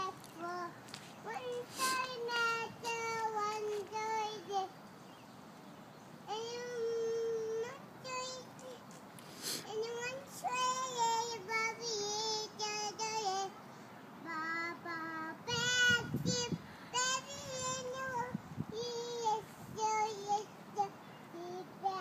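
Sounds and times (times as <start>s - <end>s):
toddler singing: 0.0s - 4.8s, 6.3s - 8.9s, 9.6s - 13.6s, 14.2s - 22.0s.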